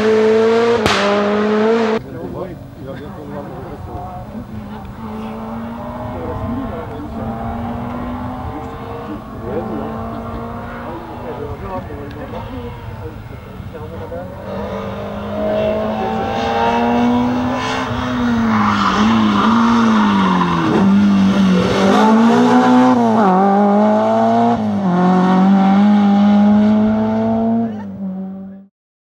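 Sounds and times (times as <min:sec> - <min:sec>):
rally car engine revving: 0:00.0 - 0:02.0, 0:03.4 - 0:28.7.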